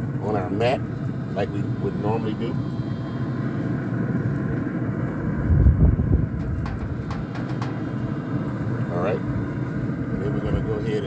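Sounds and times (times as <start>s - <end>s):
wind buffeting microphone: 3.7s - 10.8s.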